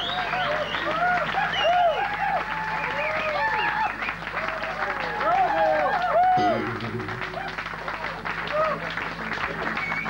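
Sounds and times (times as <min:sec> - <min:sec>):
audience applauding: 0:00.0 - 0:10.0
shouts and whoops: 0:00.8 - 0:06.6.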